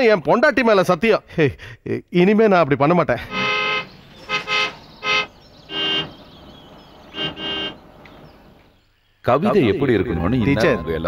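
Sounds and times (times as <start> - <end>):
car horns honking: 3.2 - 8.7
lower-pitched car horn: 3.3 - 6.2, 7.0 - 8.0.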